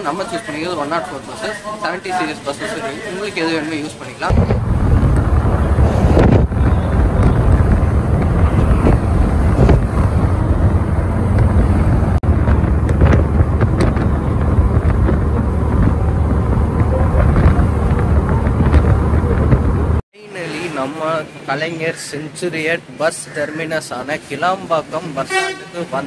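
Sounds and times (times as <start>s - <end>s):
bus road noise: 0.0s - 26.0s
wind buffeting microphone: 4.3s - 20.0s.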